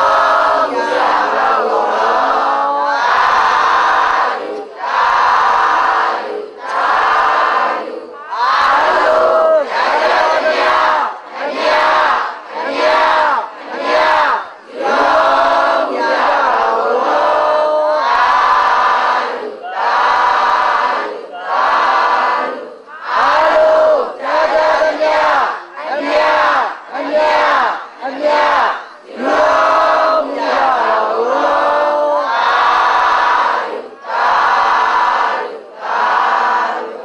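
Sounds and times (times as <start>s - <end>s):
crowd chanting in unison: 0.0s - 37.0s.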